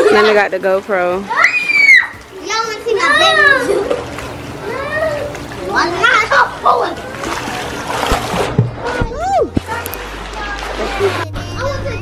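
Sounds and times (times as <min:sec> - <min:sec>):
water splashing in pool: 0:00.0 - 0:11.7
children shouting: 0:01.3 - 0:03.9, 0:04.6 - 0:07.4.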